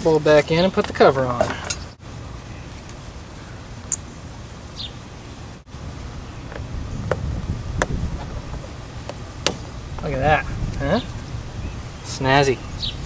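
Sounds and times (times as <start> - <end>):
low background noise: 0.0 - 13.0.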